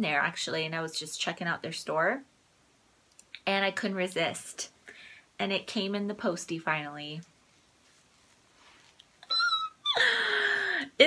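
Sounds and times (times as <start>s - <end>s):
squeal sliding down in pitch: 9.2s - 10.0s.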